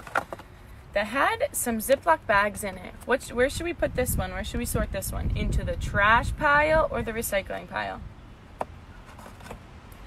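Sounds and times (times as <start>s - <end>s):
wind rumble on microphone: 3.1s - 8.2s.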